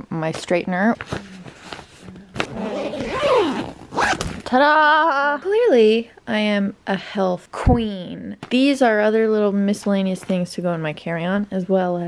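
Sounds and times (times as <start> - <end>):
zipper on fabric bag: 1.0 - 4.5
zipper click: 2.3 - 4.5.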